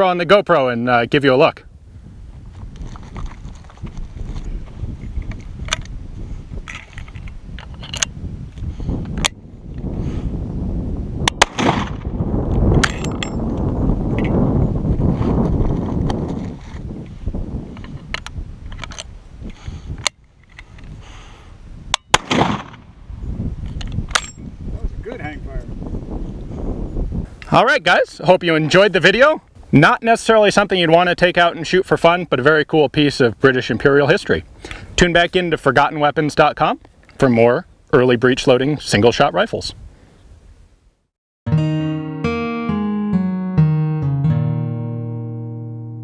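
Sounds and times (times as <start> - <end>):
loud gunshots with echo: 11.4 - 12.1, 22.1 - 22.9.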